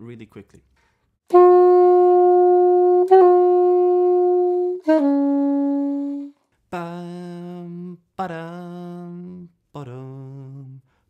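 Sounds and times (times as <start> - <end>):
alto saxophone playing: 1.3 - 6.4.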